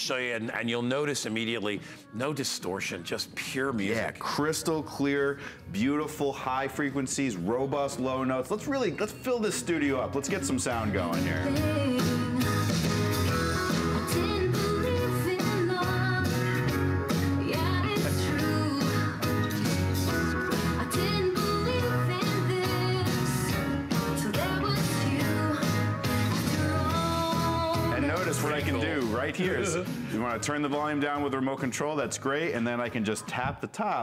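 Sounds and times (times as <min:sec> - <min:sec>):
song with singing and guitar: 0:10.1 - 0:31.4.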